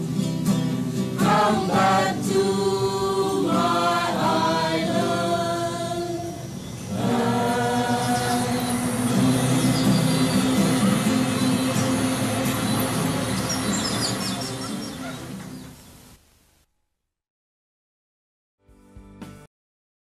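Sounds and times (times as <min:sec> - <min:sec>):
choir singing: 0:01.2 - 0:15.5.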